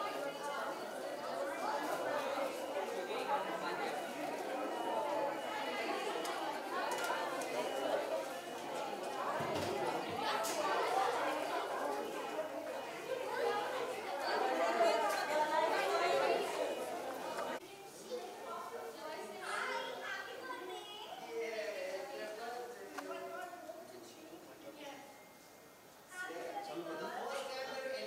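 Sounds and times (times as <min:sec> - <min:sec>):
chatter of several people: 0:00.0 - 0:28.0.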